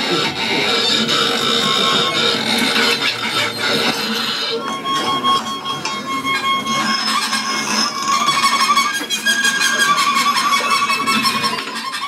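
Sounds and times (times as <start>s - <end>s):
high squealing tones: 0.0s - 12.0s.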